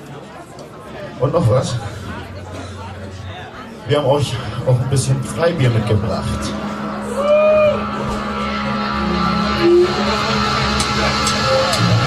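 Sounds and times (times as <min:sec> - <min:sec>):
held low note: 0:01.6 - 0:12.0
live rock band playing: 0:04.4 - 0:12.0
electric guitar: 0:05.2 - 0:12.0.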